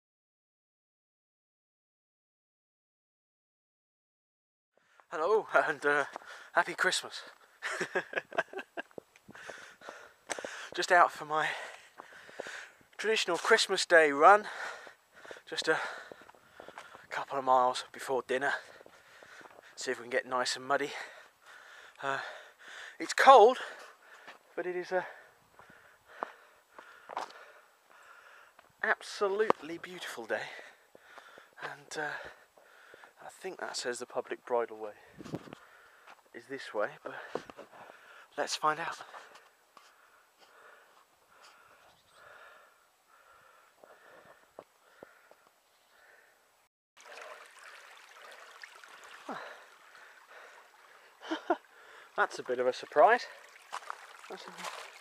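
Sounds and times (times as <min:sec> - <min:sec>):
footfalls on trail: 0:08.9 - 0:13.6, 0:14.5 - 0:17.2, 0:18.5 - 0:19.8, 0:25.6 - 0:27.6, 0:37.1 - 0:38.2, 0:53.1 - 0:55.0
person breathing hard: 0:09.3 - 0:10.8, 0:11.5 - 0:12.9, 0:14.4 - 0:17.1, 0:18.6 - 0:19.8, 0:21.0 - 0:23.0, 0:25.2 - 0:28.6, 0:30.7 - 0:31.6, 0:32.2 - 0:33.2, 0:37.2 - 0:38.3, 0:39.2 - 0:46.5, 0:49.1 - 0:52.2.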